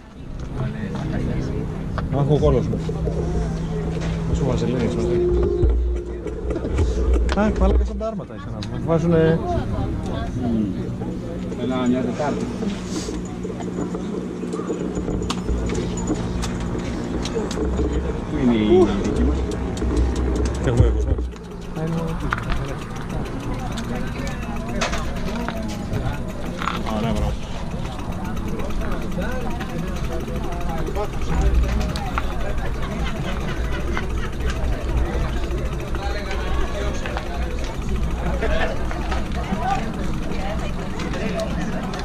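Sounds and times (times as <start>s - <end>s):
people talking indistinctly: 0.0s - 42.0s
steady low hum: 0.0s - 42.0s
low rumble on microphone: 2.7s - 8.2s.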